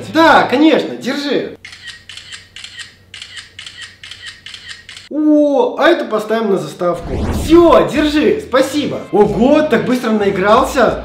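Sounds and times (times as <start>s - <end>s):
phone camera shutter clicks: 1.6s - 5.1s.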